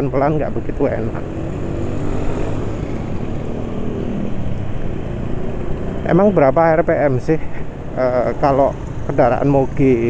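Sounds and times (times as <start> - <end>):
man talking: 0.0 - 1.2, 6.0 - 10.0.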